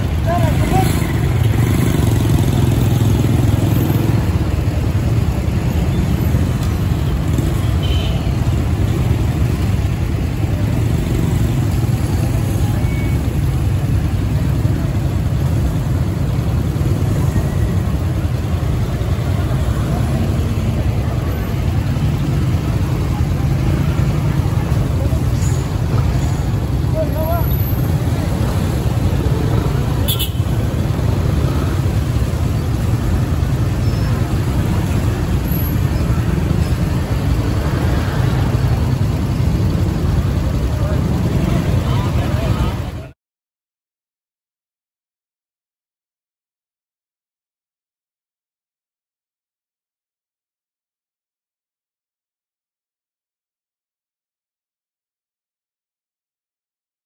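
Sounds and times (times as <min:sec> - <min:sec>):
street traffic rumble: 0:00.0 - 0:43.2
voices: 0:00.0 - 0:43.2.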